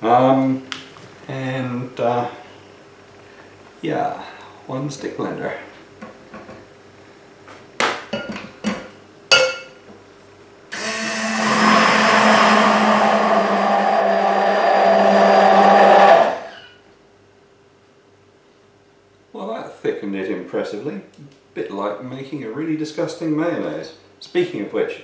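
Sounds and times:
stick blender running: 10.7s - 16.7s.

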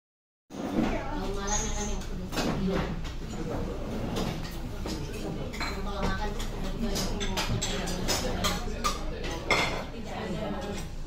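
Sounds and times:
murmur of diners' voices: 0.5s - 11.0s
tableware clinking: 1.4s - 11.0s.

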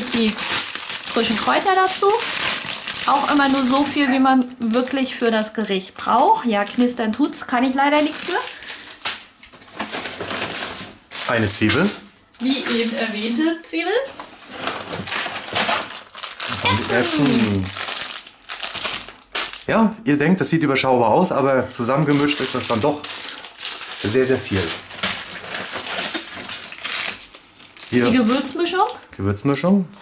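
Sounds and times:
hand rummaging in packaging: 0.0s - 4.4s, 9.6s - 13.3s, 14.3s - 19.7s, 22.1s - 29.0s
paper bag rustling: 0.0s - 4.8s, 7.9s - 19.7s, 22.0s - 29.0s
plastic bag crinkling: 0.0s - 19.8s, 21.7s - 29.8s.

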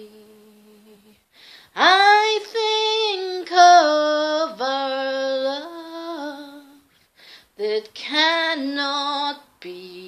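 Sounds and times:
woman singing unaccompanied: 0.0s - 6.9s, 7.5s - 10.0s.

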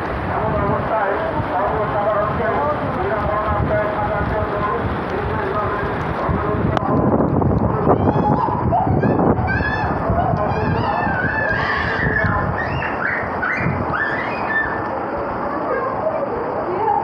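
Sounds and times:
heavy rain on street: 0.0s - 17.0s
gliding high calls: 10.6s - 15.0s.

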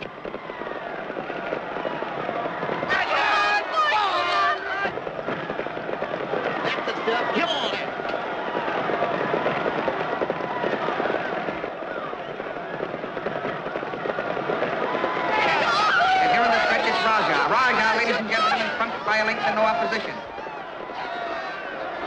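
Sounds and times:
crowd shouting: 0.0s - 22.0s
horse hooves clattering on dirt: 0.0s - 22.0s.

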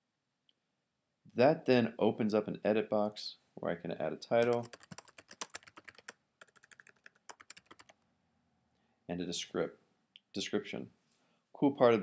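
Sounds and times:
keyboard typing: 4.4s - 8.0s.

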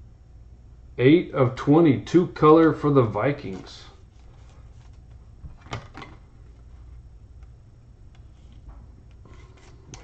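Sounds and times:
card in plastic sleeve rustling: 2.6s - 7.0s, 8.2s - 10.0s.

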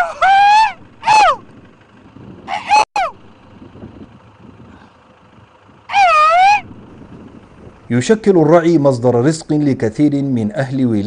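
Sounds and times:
open field background: 0.0s - 11.0s.

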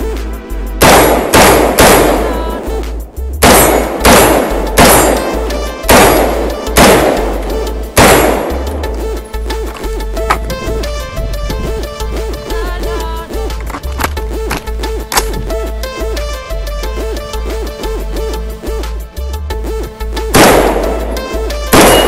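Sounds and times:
background music with steady beat: 0.0s - 22.0s
rifle shots: 0.8s - 2.6s, 3.4s - 9.0s, 20.3s - 22.0s.

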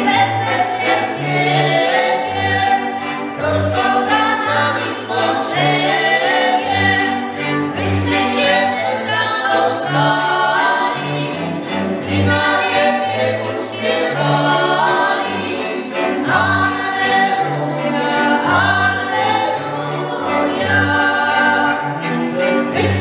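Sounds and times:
bowed bass: 0.0s - 23.0s
fiddles playing: 0.0s - 23.0s
voices singing in unison: 0.0s - 23.0s.

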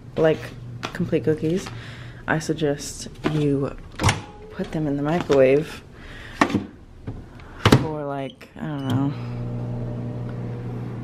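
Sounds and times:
microwave oven door opening: 8.7s - 11.0s.

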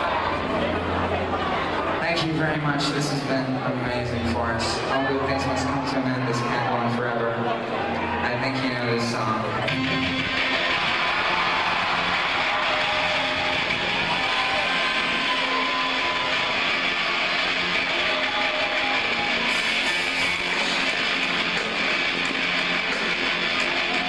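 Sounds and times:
electric guitars strumming: 7.4s - 24.0s
live rock band: 9.0s - 24.0s.

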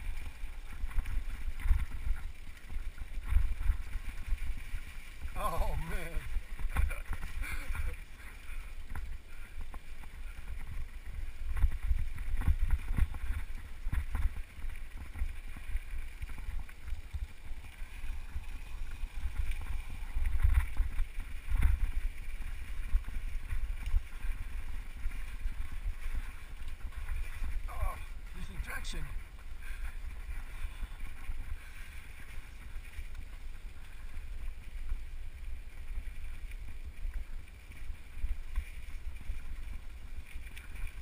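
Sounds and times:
wind on microphone: 0.0s - 41.0s.

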